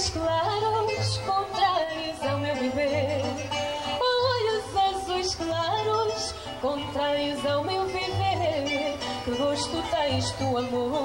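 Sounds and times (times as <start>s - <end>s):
acoustic guitar accompaniment: 0.0s - 11.0s
plucked bass notes: 0.0s - 11.0s
woman singing with vibrato: 0.0s - 11.0s.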